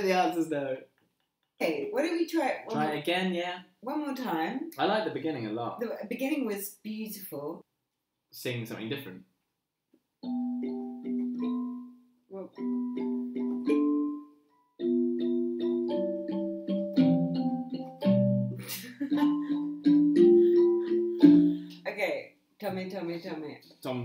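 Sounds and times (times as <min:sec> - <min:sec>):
electronic keyboard playing chords: 0:10.2 - 0:21.7.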